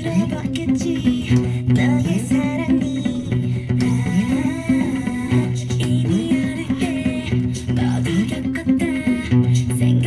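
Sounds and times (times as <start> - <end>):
backing pop track: 0.0 - 10.0
electric bass guitar line: 0.0 - 10.0.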